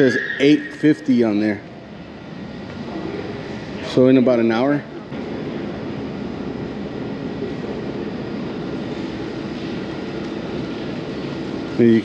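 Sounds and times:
air conditioning and fans droning: 0.0 - 12.0.

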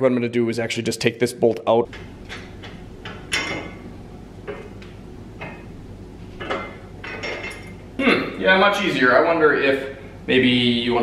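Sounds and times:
light metal clinks and knocks: 1.9 - 3.8, 6.4 - 7.8.

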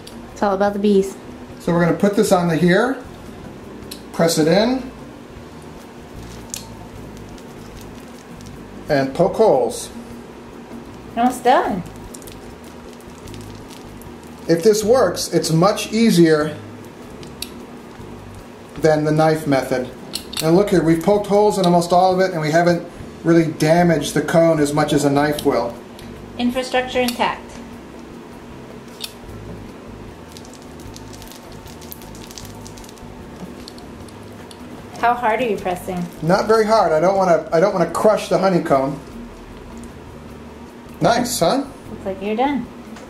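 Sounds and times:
uncapping roller crackling on wax: 5.4 - 10.0, 10.7 - 26.1, 28.8 - 40.1.

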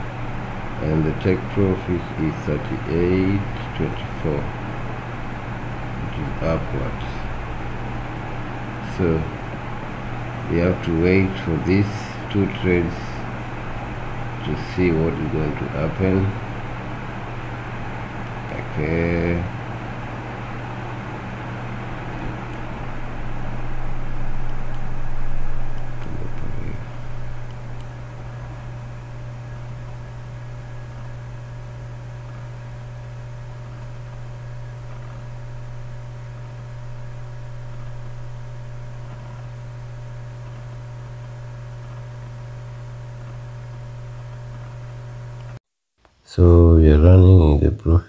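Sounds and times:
steady low hum: 0.0 - 45.6.

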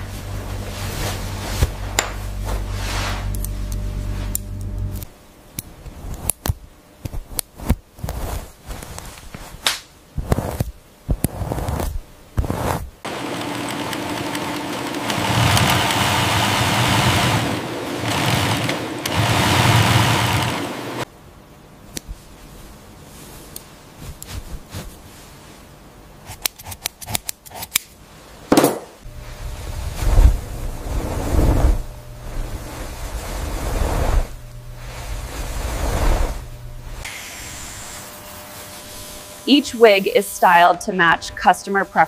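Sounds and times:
hair swishing through lace: 0.1 - 5.1, 24.0 - 25.0.

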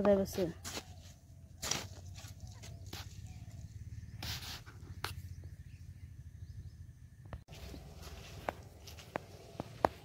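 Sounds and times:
hoe chopping into dry soil: 1.6 - 3.2.

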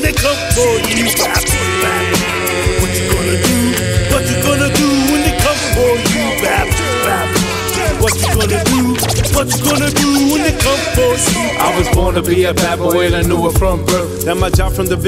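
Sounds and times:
hip hop beat: 0.0 - 15.0
person rapping: 0.0 - 15.0.

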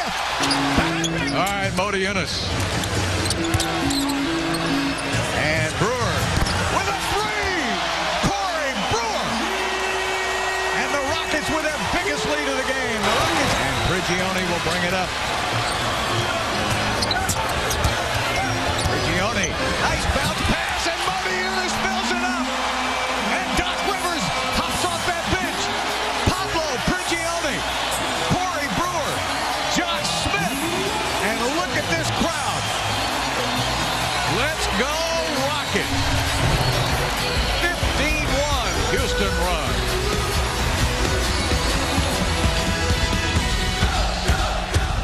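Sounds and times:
sneakers squeaking: 0.1 - 1.4, 2.5 - 5.4, 6.2 - 6.8, 15.2 - 19.7
low background music: 0.2 - 45.0.

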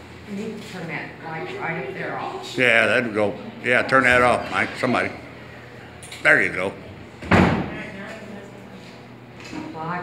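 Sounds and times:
loud thump: 7.2 - 7.8.

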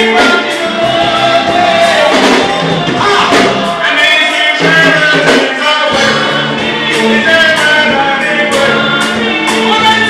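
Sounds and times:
backing singers: 0.0 - 10.0
live band playing: 0.0 - 10.0
man singing lead: 0.0 - 10.0.

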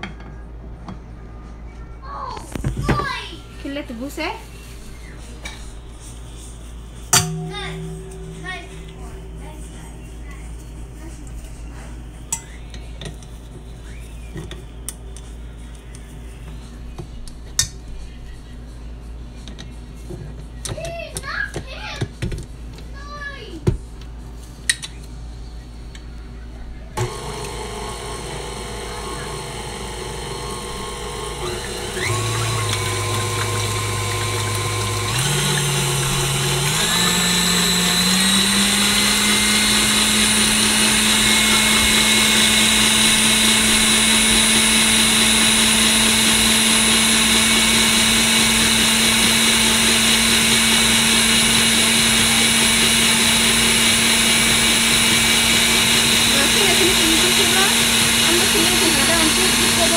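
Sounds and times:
stand mixer motor hum: 27.0 - 59.9
whisk beating eggs in metal bowl: 31.0 - 59.9.

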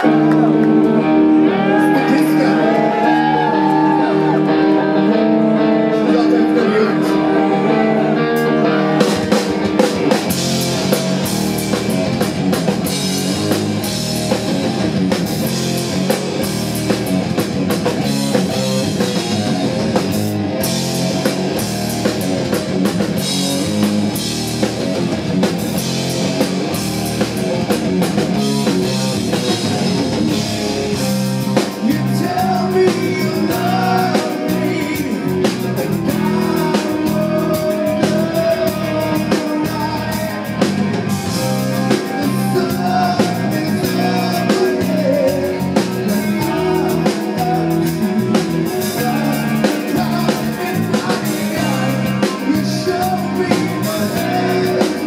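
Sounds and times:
metal band playing live: 0.0 - 55.0.

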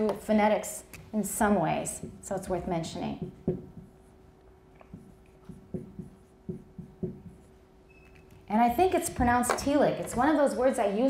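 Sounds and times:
faint steady hum: 0.0 - 11.0
marker writing on whiteboard: 2.0 - 8.4.

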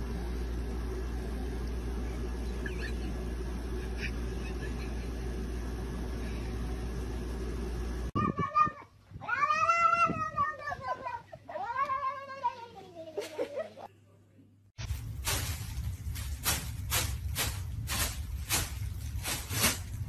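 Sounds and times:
steady low hum: 0.0 - 8.2, 13.9 - 20.0
cat meowing: 8.2 - 12.6.

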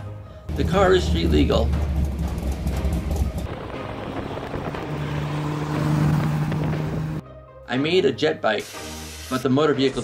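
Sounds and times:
car engine running: 0.5 - 7.2.

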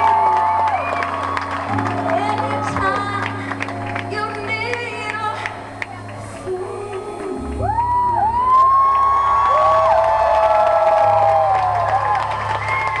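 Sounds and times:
long held whoops: 0.0 - 1.7, 7.6 - 13.0
concert audience cheering: 0.0 - 4.2, 7.6 - 13.0.

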